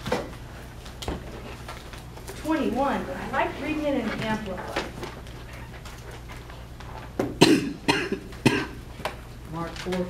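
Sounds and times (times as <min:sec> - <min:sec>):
person coughing: 0:07.4 - 0:08.8.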